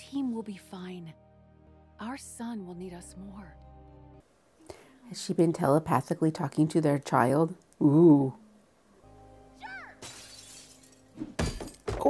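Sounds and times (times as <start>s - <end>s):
glass shattering and tinkling: 10.0s - 12.0s.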